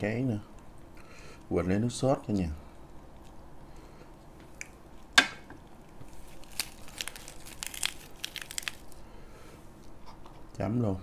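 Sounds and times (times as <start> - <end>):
lettuce leaf crinkling: 5.8 - 9.1.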